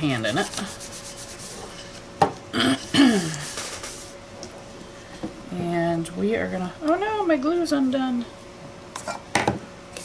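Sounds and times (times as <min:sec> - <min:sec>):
paper towel wiping a table: 0:00.1 - 0:01.9, 0:03.4 - 0:04.1.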